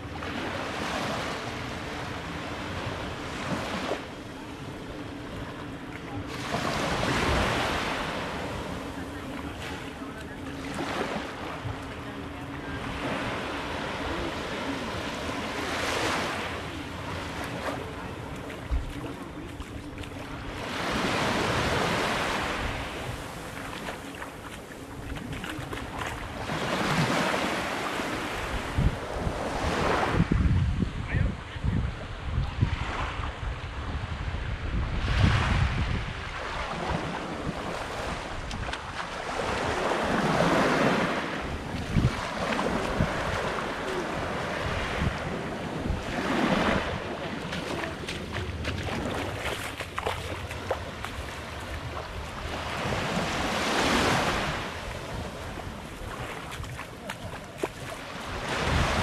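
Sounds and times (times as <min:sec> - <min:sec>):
small waves on sandy beach: 0:00.0 - 0:59.0
wind buffeting microphone: 0:28.4 - 0:40.5, 0:41.4 - 0:59.0.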